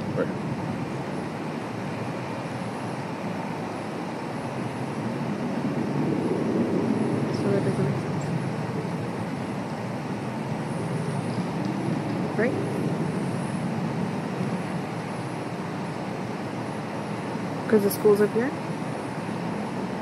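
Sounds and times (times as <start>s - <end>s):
steady rumbling noise: 0.0s - 20.0s.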